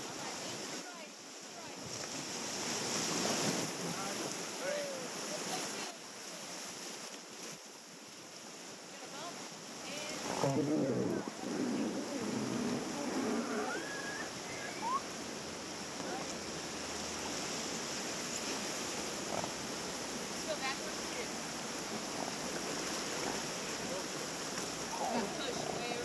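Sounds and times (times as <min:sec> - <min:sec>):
river rapids rushing: 0:08.7 - 0:26.0
voices: 0:09.0 - 0:15.2, 0:23.3 - 0:26.0.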